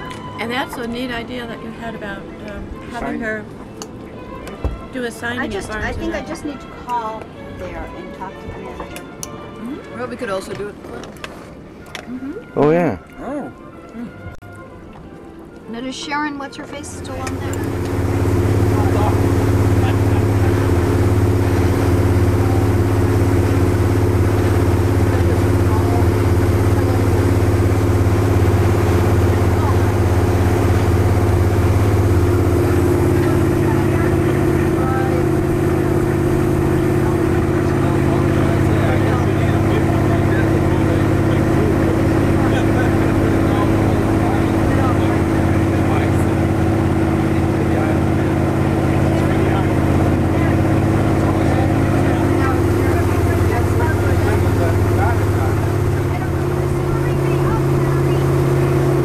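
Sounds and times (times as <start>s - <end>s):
motorboat engine drone: 0.0s - 12.6s, 13.2s - 59.0s
wind and water rushing: 14.4s - 59.0s.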